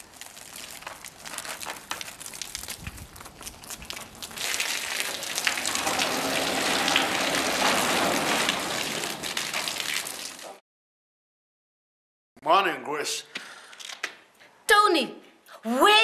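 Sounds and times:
garden hose spraying plants: 0:00.0 - 0:10.6.

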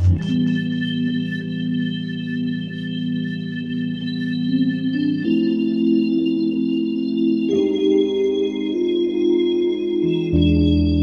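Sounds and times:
organ-like keyboard chords: 0:04.0 - 0:11.0.

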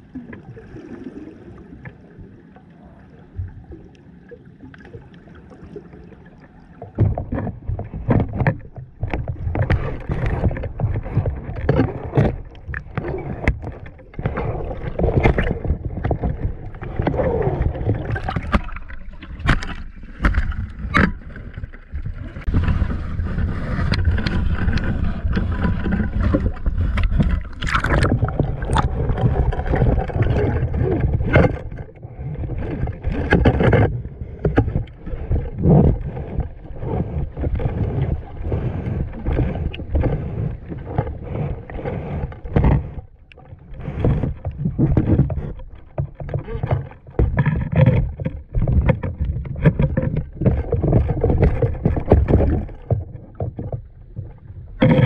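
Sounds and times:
seawater surging and sloshing: 0:00.0 - 0:55.0.

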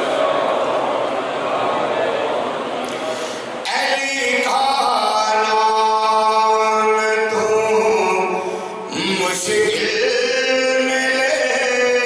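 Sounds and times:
man chanting devotional verse: 0:03.6 - 0:12.0.

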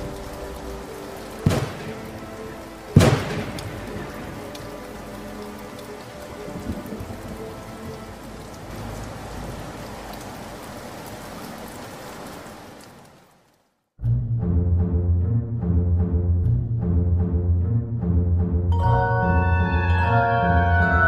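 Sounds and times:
faint background music: 0:00.0 - 0:08.7
steady rain: 0:00.0 - 0:14.0, 0:18.8 - 0:21.0
thunder cracks: 0:01.4 - 0:04.4.

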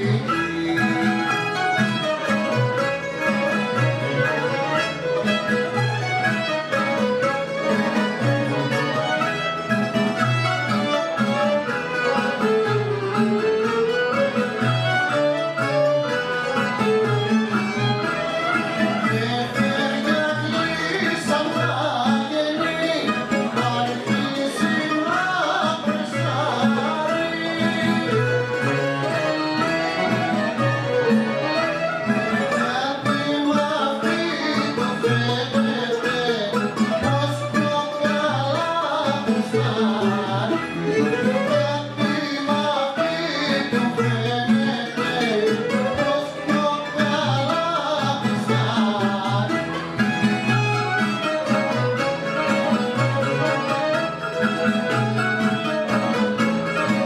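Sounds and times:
string band playing instrumental: 0:00.0 - 0:57.0.

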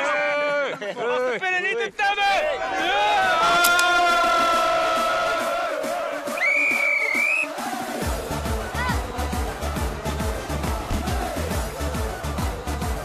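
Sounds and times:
men chanting in unison: 0:02.4 - 0:06.4, 0:07.1 - 0:13.0
high wavering whistle blast: 0:06.3 - 0:07.5.

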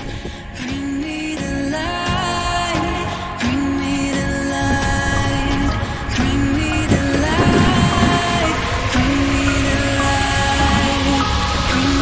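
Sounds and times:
background music with held tones: 0:00.0 - 0:12.0.

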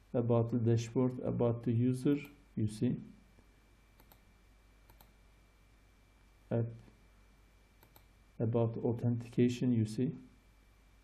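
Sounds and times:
computer mouse clicks: 0:04.0 - 0:05.2, 0:07.8 - 0:08.1.

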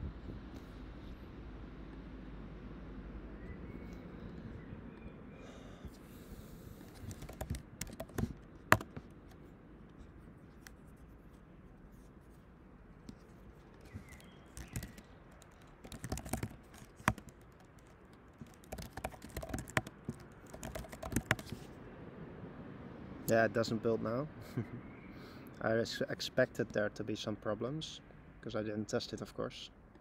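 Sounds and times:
typing on computer keyboard: 0:06.9 - 0:09.0, 0:13.8 - 0:21.7.

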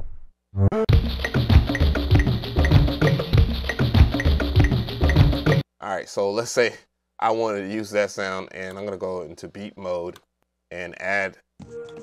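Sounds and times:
drum and percussion pattern: 0:00.9 - 0:05.6.

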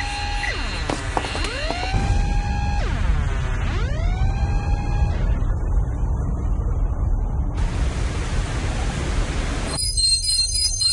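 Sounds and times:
loud steady rushing noise: 0:00.0 - 0:09.8
deep rumble: 0:00.8 - 0:09.7.

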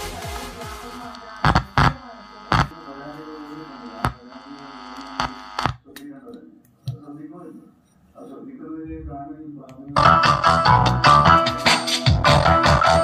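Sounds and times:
electronic dance music: 0:00.0 - 0:02.7, 0:10.0 - 0:13.0
speaker mains hum: 0:00.1 - 0:13.0.

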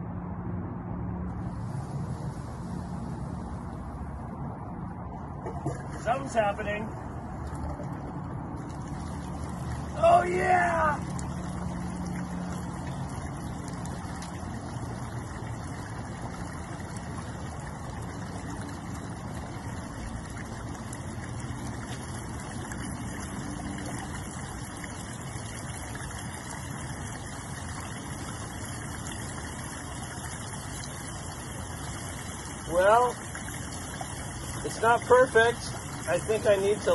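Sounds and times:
pump low hum: 0:00.0 - 0:36.9
water splashing into pond: 0:01.4 - 0:36.9.

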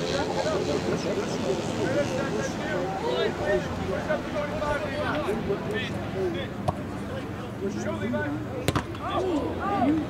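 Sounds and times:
distant players shouting: 0:08.6 - 0:10.0.

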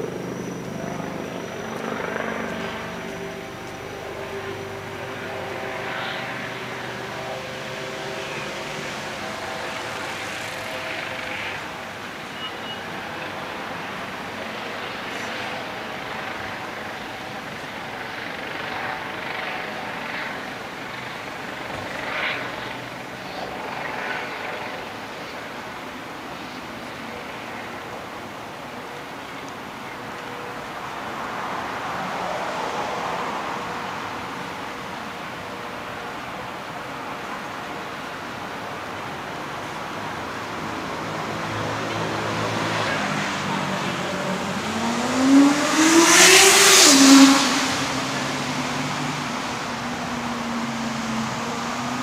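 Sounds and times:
loud vehicle accelerating past: 0:00.0 - 0:16.6, 0:40.3 - 0:52.0
vehicle passing: 0:00.0 - 0:16.6, 0:40.2 - 0:52.0.

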